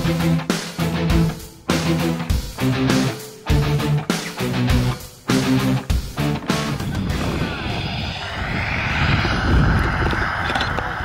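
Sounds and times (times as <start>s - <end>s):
wind rushing over microphone: 6.6s - 11.0s.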